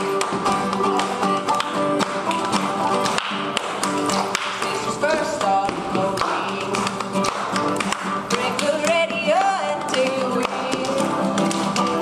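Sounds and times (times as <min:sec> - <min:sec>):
acoustic guitar: 0:00.0 - 0:12.0
banjo picking: 0:00.0 - 0:12.0.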